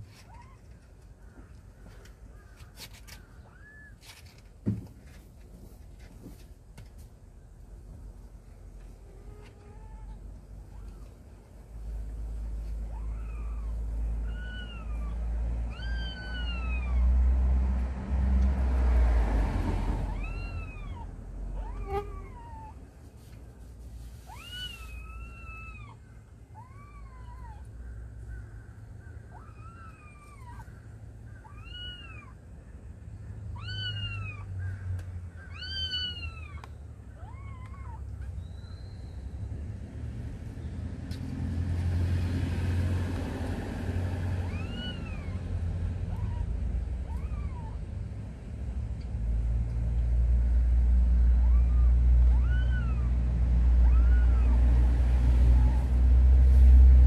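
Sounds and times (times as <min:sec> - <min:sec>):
cat meowing: 0:09.0 - 0:11.1, 0:12.8 - 0:17.0, 0:20.1 - 0:22.8, 0:31.4 - 0:32.4, 0:33.5 - 0:34.5, 0:35.5 - 0:38.1, 0:44.4 - 0:45.4, 0:46.1 - 0:47.8, 0:51.4 - 0:53.2, 0:53.8 - 0:54.6.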